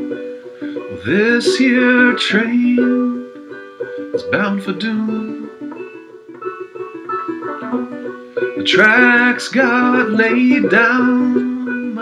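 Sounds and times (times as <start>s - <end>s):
banjo picking: 0.0s - 12.0s.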